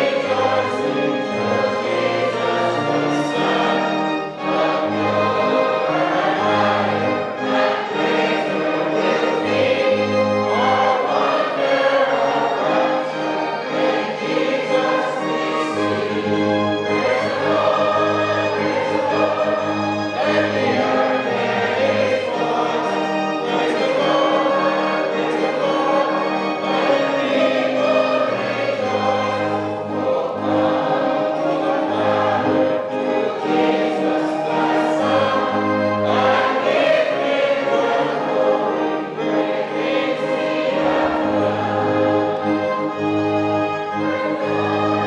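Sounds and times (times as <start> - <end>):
many voices singing a hymn: 0.0 - 45.0
sustained instrumental accompaniment: 0.0 - 45.0.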